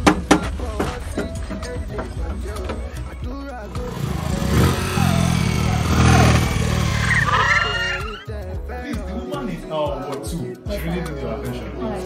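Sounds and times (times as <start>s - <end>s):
background music: 0.0s - 12.0s
voices: 0.1s - 12.0s
vehicle engine running loudly: 3.8s - 7.8s.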